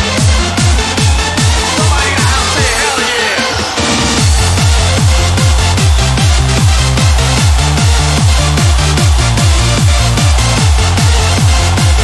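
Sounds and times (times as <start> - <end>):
fast kick drum: 4.2 - 12.0.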